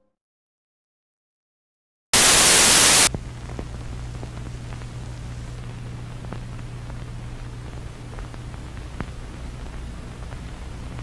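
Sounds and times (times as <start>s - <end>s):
faint crackles: 2.2s - 11.0s
loud static hiss: 2.2s - 11.0s
quiet hiss: 2.2s - 11.0s
steady low hum: 2.2s - 11.0s.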